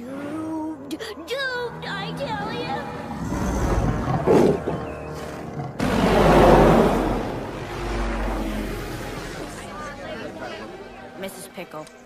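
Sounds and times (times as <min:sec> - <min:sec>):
helicopter flying past: 0:05.8 - 0:11.4.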